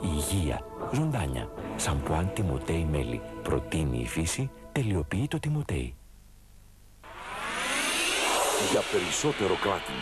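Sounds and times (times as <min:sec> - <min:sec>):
faint hum: 0:04.5 - 0:10.0
rising whoosh: 0:07.0 - 0:10.0.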